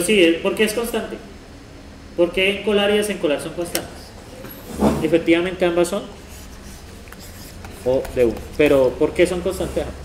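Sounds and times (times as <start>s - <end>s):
stylus scratching on a tablet: 6.2s - 9.8s
man talking: 7.8s - 10.0s.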